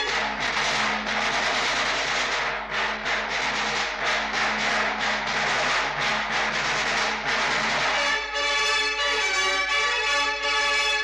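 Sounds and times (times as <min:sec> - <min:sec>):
drum roll on large drums: 0:00.0 - 0:08.2.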